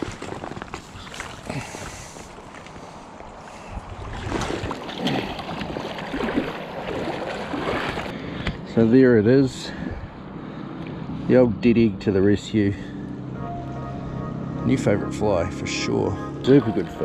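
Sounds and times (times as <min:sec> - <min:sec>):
river water splashing: 0:00.0 - 0:08.4.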